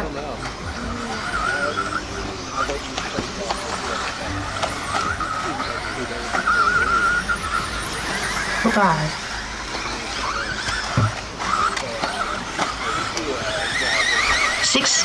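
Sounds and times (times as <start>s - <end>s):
electric rc car motors whining: 0.0s - 15.0s
sharp clicks and knocks: 10.6s - 13.3s.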